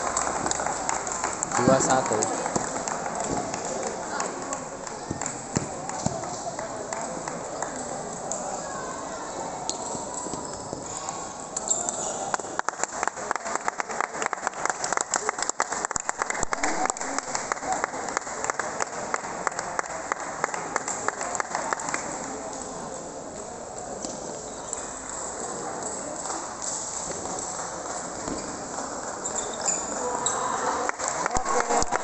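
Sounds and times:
murmur of voices in a hall: 0.0 - 32.0.

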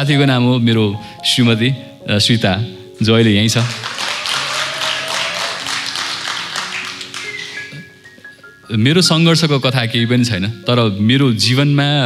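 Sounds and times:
soft background music: 0.0 - 12.0
audience applauding: 3.6 - 8.0.

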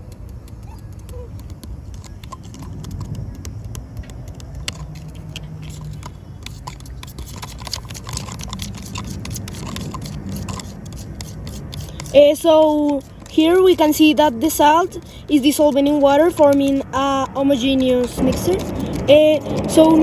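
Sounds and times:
spoon clicking against plastic cup: 0.0 - 19.9
low rumble: 2.4 - 6.4.

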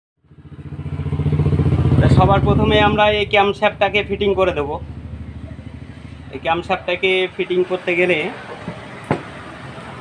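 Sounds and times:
engine running steadily: 0.4 - 10.0.

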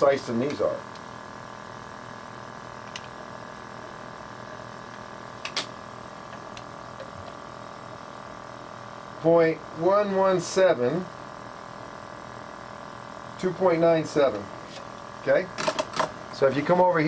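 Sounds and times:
printer fans humming: 0.0 - 17.0.

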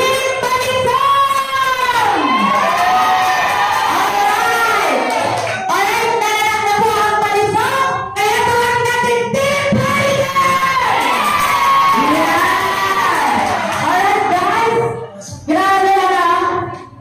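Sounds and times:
crowd cheering and shouting: 0.3 - 6.0, 9.5 - 15.3.

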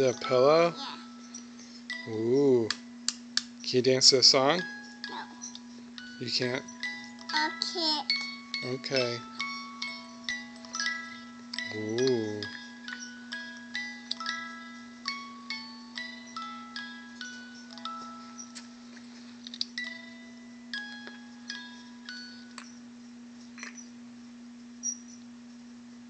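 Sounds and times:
music box tinkling tune: 0.0 - 2.6, 4.0 - 19.1, 19.8 - 22.9
steady low hum: 0.0 - 26.0.

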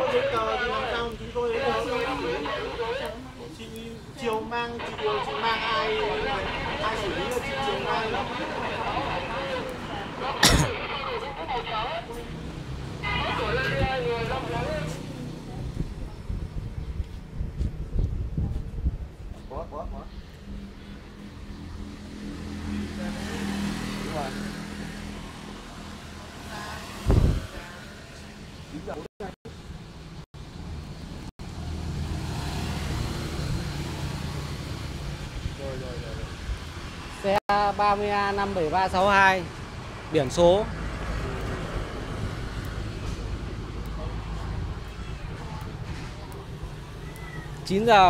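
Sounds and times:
people talking: 0.0 - 12.4, 13.0 - 16.4
motorbikes passing: 0.0 - 17.6, 19.5 - 29.1, 29.7 - 48.0.

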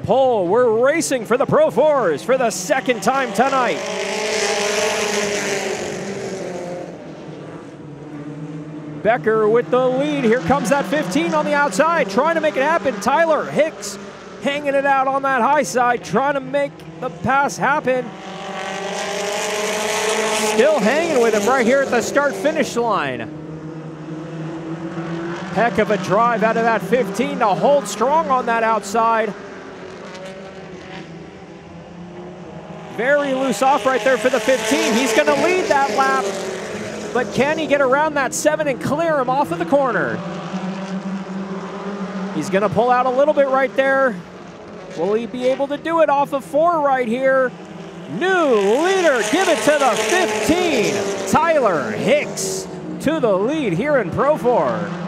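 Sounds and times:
stock car engines racing past: 0.0 - 55.0.

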